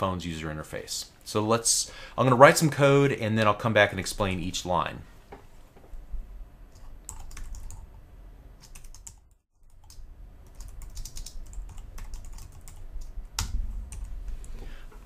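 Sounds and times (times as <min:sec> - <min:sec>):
computer keyboard typing: 0:06.8 - 0:07.8, 0:08.6 - 0:14.1.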